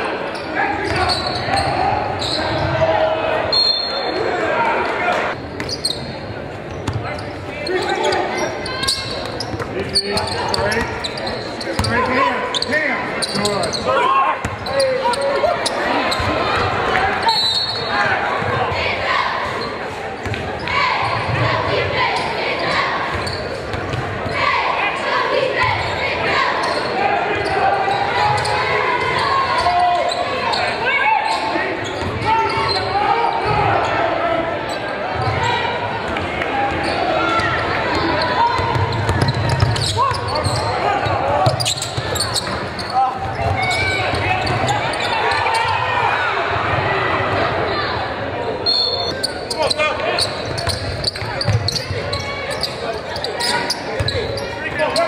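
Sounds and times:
voices in a large hall: 0.0 - 55.0.

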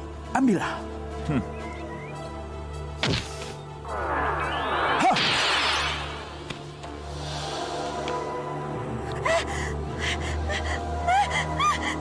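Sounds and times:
low droning music: 0.0 - 12.0.

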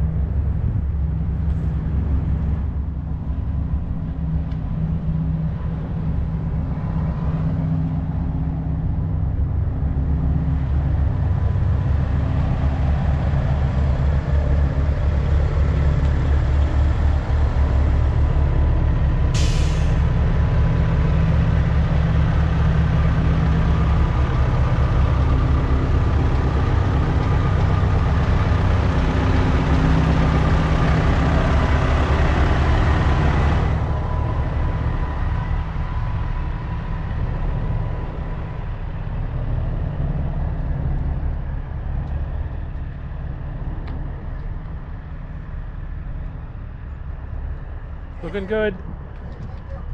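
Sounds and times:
diesel truck engines idling: 0.0 - 49.9
air brake hiss: 19.3 - 20.1.

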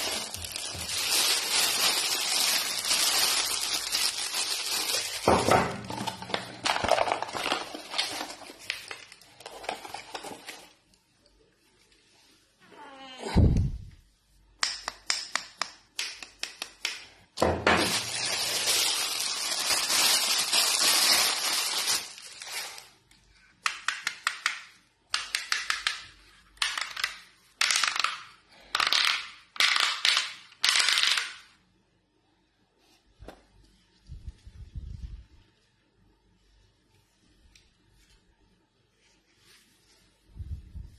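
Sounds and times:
plastic packaging crinkling: 0.0 - 10.9, 17.5 - 23.1.

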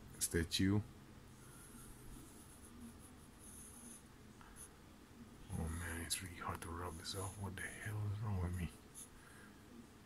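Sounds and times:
pencil scratching on paper: 1.4 - 4.8, 6.7 - 7.6.

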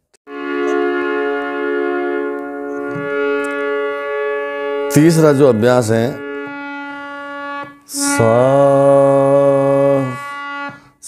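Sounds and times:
harmonium reed note: 0.3 - 11.0
man singing a steady note: 7.9 - 10.8.

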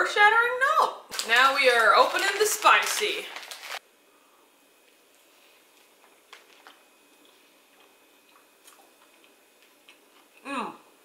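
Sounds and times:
person chewing: 5.7 - 10.5.

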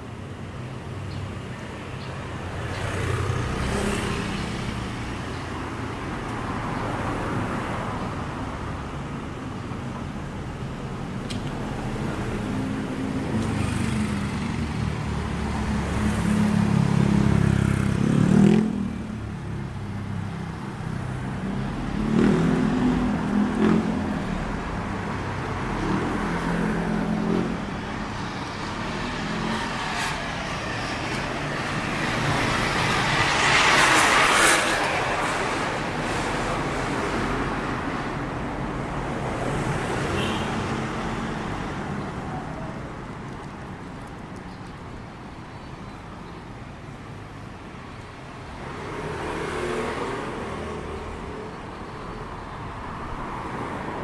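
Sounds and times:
cars and motorbikes passing: 0.0 - 54.0.

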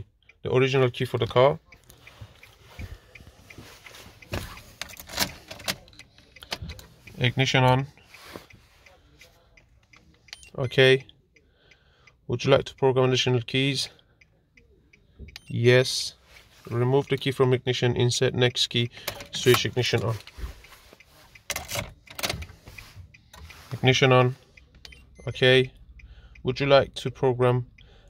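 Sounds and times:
car keys jangling: 4.2 - 7.0, 19.1 - 23.0.

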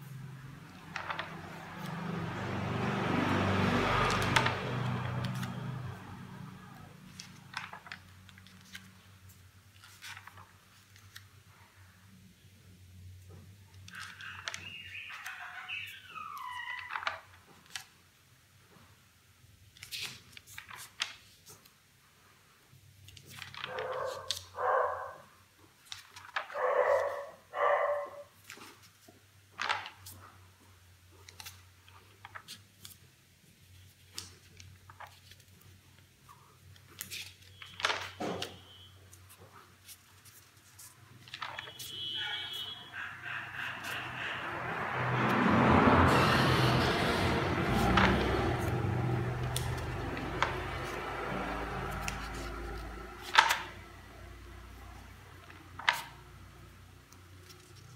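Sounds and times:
paper pages turning: 0.6 - 2.1, 2.9 - 6.4, 7.0 - 11.4, 13.4 - 18.0, 19.7 - 21.8, 23.0 - 24.7, 25.8 - 27.3, 28.4 - 30.3, 31.2 - 53.9, 54.8 - 56.3, 57.0 - 57.9
dog barking: 23.7 - 25.3, 26.5 - 28.3, 42.2 - 44.1
broad rushing noise: 42.9 - 53.5.

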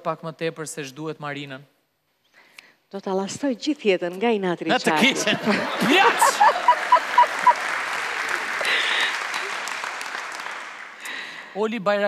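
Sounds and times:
audience applauding: 5.0 - 11.5.

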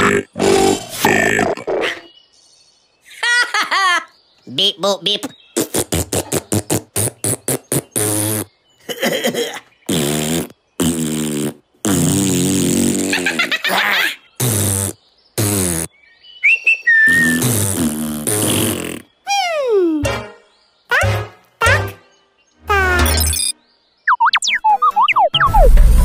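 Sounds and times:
buzzy raspberry-like cartoon noises: 0.0 - 2.1, 5.6 - 9.3, 9.9 - 15.9, 17.1 - 20.2, 22.6 - 23.5.

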